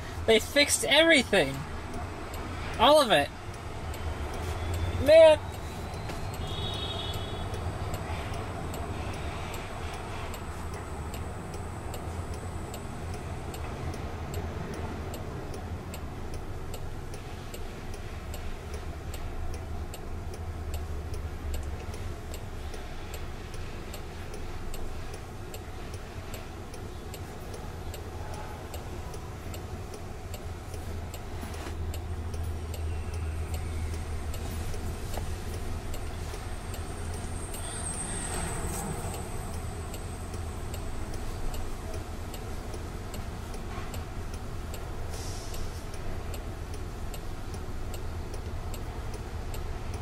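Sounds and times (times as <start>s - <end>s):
low hum in car cabin: 0.0s - 38.0s, 38.7s - 50.0s
steady ticking: 0.0s - 50.0s.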